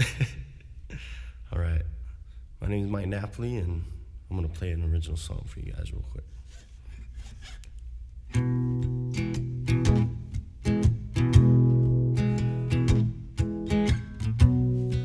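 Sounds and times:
acoustic guitar strummed chords: 0:08.3 - 0:15.0.

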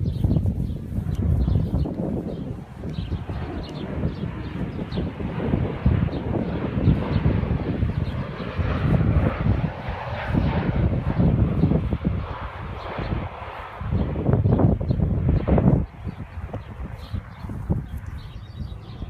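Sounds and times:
airplane engine droning: 0:00.0 - 0:19.0
wind rumbling on microphone: 0:00.0 - 0:19.0.

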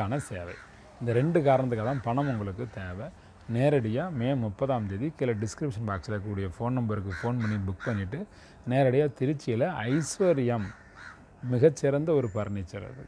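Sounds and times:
man talking: 0:00.0 - 0:10.8, 0:11.4 - 0:13.0.

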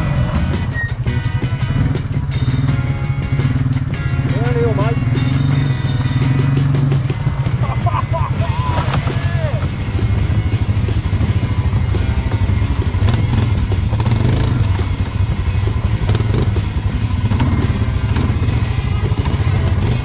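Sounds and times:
music playing: 0:00.0 - 0:20.0
quad bike engine running: 0:00.0 - 0:20.0.

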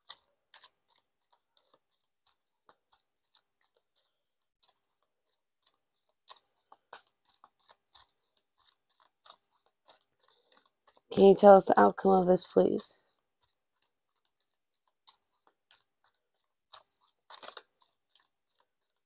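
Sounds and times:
cards being shuffled by hand: 0:00.0 - 0:19.0.

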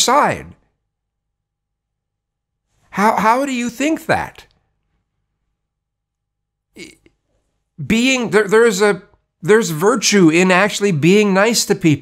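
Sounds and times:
man speaking: 0:00.0 - 0:00.7, 0:02.9 - 0:04.6, 0:06.8 - 0:07.1, 0:07.8 - 0:12.0.

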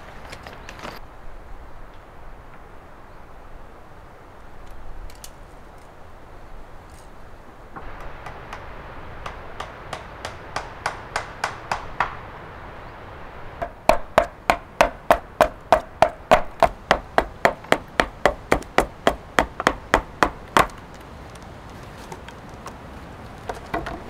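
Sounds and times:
hatchet chopping wood: 0:07.8 - 0:12.2, 0:13.6 - 0:20.8.

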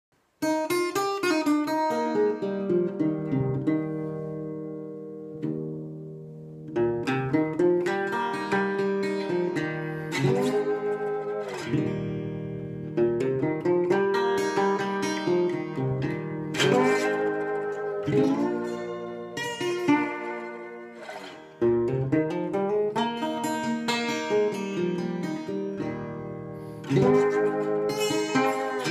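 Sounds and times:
slide guitar playing: 0:00.4 - 0:28.9.

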